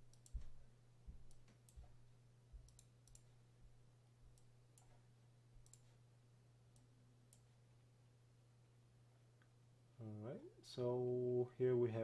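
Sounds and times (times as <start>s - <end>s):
steady low hum: 0.0s - 12.0s
computer mouse clicks: 0.1s - 0.5s, 2.6s - 3.3s, 5.6s - 6.0s.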